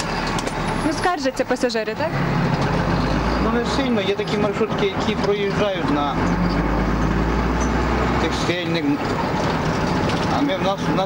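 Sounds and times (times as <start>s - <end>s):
engine droning: 0.0s - 11.0s
road noise: 0.0s - 11.0s.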